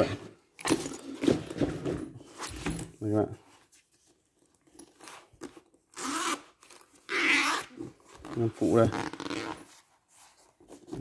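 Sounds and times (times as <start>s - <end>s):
zipper being pulled open: 5.9s - 9.8s.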